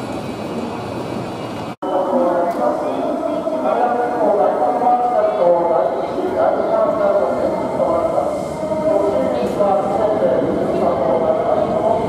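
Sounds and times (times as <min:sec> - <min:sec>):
murmur of passengers' voices: 0:00.0 - 0:12.0.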